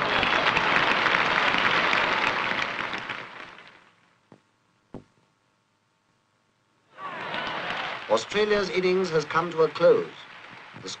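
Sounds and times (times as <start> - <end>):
crowd applauding: 0.0 - 4.0, 6.9 - 11.0.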